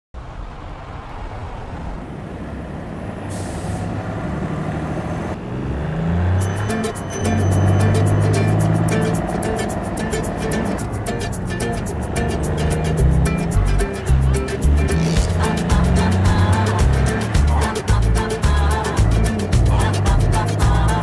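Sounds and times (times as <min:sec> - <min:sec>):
cars passing: 0:00.2 - 0:21.0
brief hiss: 0:03.3 - 0:03.9
music with beat and bass: 0:06.4 - 0:21.0.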